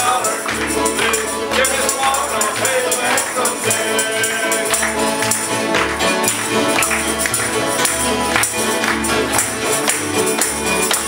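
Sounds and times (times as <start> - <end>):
strummed acoustic guitars: 0.0 - 11.0
upright bass: 0.0 - 11.0.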